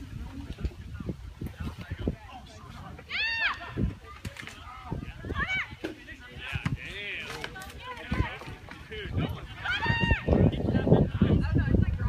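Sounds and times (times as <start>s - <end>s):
players shouting calls: 3.0s - 4.1s, 5.2s - 10.6s.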